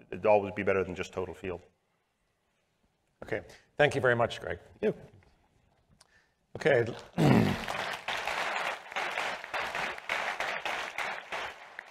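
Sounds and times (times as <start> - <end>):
audience applauding: 7.0 - 11.9.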